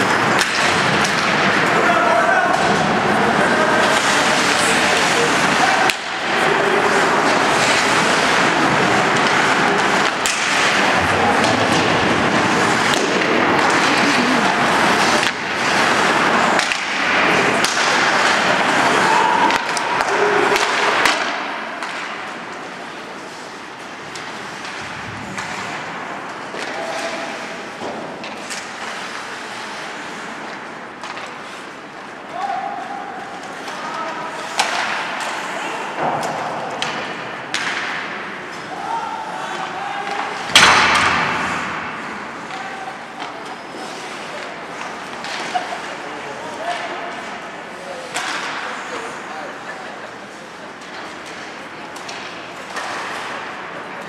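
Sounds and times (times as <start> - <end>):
skates scraping on ice: 0.0 - 32.2, 40.2 - 53.9
hockey sticks and puck clacking: 0.0 - 54.0
people shouting: 1.6 - 4.0, 18.7 - 21.0.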